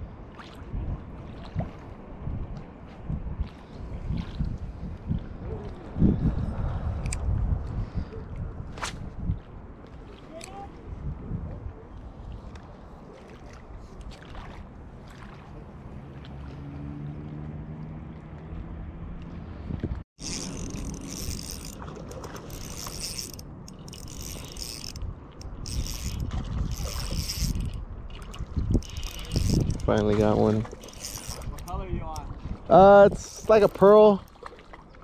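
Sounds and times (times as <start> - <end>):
fishing reel whirring: 20.2 - 30.1, 30.8 - 31.7.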